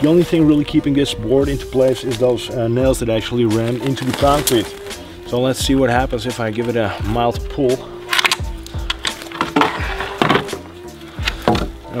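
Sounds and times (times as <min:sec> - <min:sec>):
background music: 0:00.0 - 0:12.0
wooden board cracking off concrete: 0:08.1 - 0:12.0.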